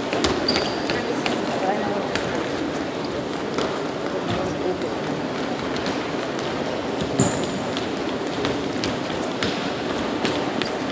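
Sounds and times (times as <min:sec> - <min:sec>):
large gym noise: 0:00.0 - 0:10.9
sneaker squeak: 0:00.2 - 0:01.4, 0:07.1 - 0:07.6, 0:10.4 - 0:10.9.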